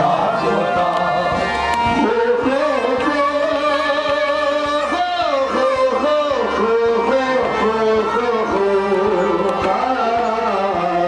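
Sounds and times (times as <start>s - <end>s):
person singing long wavering notes: 0.0s - 11.0s.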